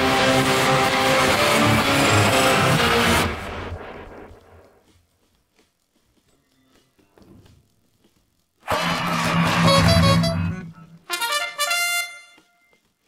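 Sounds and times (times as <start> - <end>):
loud held instrumental chord: 0.0 - 4.3, 8.7 - 12.3.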